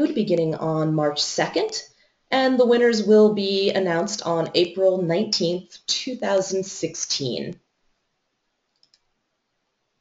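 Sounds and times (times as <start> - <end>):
faint computer clicks: 8.7 - 9.2.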